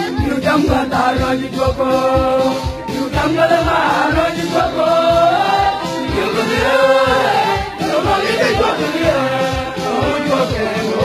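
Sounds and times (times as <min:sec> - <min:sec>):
choir singing: 0:02.9 - 0:11.0.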